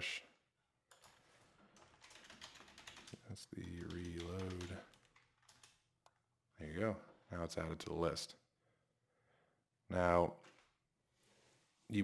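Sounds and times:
keyboard keys clicking: 0:01.8 - 0:03.2, 0:03.8 - 0:05.8.

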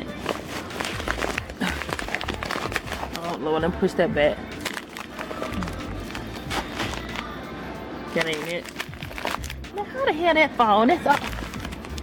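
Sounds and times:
plastic bags crinkling: 0:00.0 - 0:03.4, 0:04.6 - 0:07.3, 0:08.1 - 0:09.8, 0:10.8 - 0:12.0.

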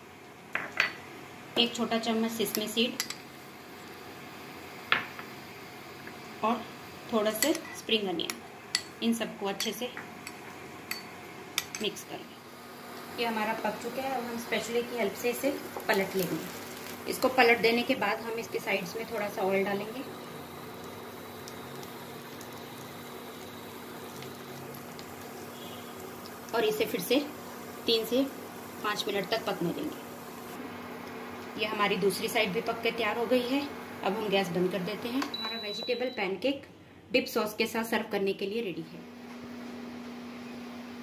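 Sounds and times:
faint steady hum: 0:00.0 - 0:41.0
pancake sizzling in oil: 0:12.4 - 0:30.6
oil popping: 0:20.5 - 0:26.6.

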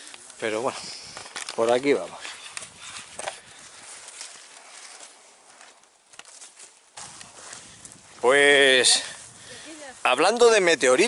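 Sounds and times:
footsteps on stony ground: 0:00.0 - 0:11.0.

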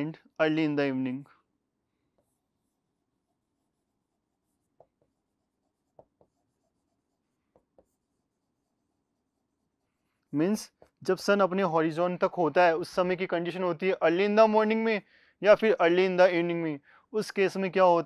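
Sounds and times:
chalk writing on blackboard: 0:02.0 - 0:11.0.

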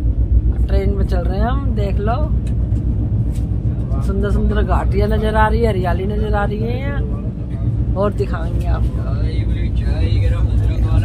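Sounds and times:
train low rumble: 0:00.0 - 0:11.0
train rattling: 0:00.0 - 0:11.0.

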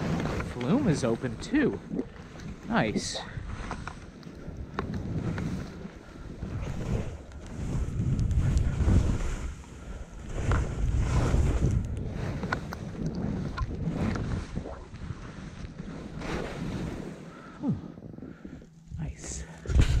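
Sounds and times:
skis sliding over snow: 0:00.0 - 0:17.6
wind buffeting microphone: 0:00.0 - 0:20.0.

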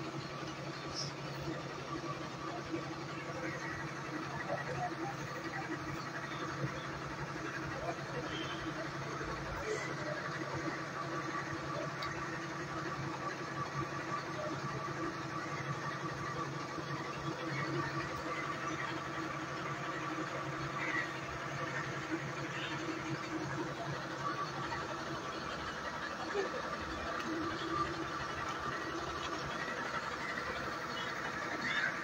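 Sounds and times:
fire engine engine running: 0:00.0 - 0:32.0.

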